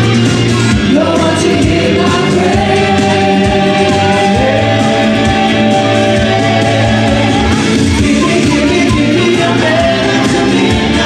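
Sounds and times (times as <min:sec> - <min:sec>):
amplified backing music: 0:00.0 - 0:11.0
vocal group singing harmonies: 0:00.6 - 0:11.0.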